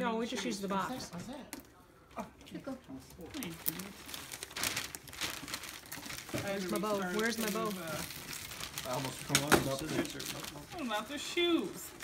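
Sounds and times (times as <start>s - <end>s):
wrapping paper crinkling: 3.1s - 12.0s.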